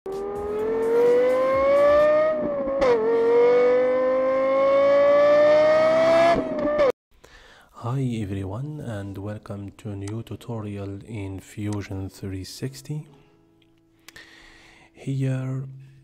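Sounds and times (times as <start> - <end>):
car engine accelerating hard: 0.1 - 6.9.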